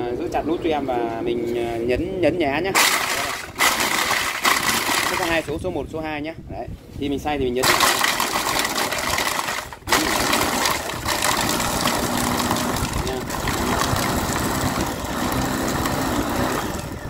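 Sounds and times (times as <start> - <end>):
food chopper crushing ice: 2.8 - 5.6, 7.6 - 17.0.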